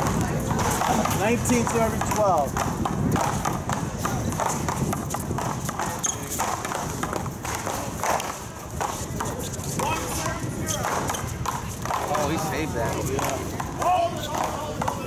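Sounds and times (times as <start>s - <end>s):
paddles smacking rubber ball: 0.0s - 12.2s.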